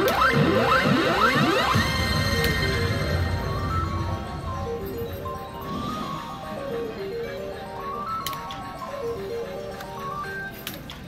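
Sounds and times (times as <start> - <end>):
slot machine electronic music: 0.0 - 11.0.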